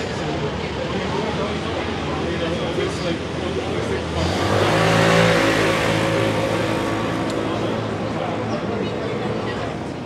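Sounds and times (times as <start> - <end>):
car engine speeding up: 4.1 - 8.4.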